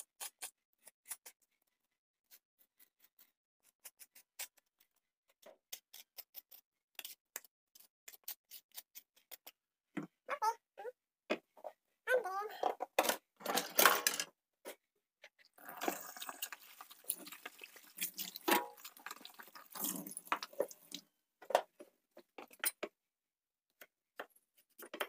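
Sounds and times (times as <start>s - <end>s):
tap water running: 15.6s - 21.0s.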